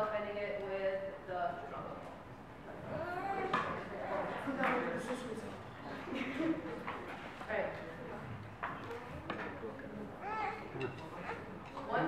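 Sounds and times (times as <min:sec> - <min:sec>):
quiet voices talking: 0:01.7 - 0:12.0.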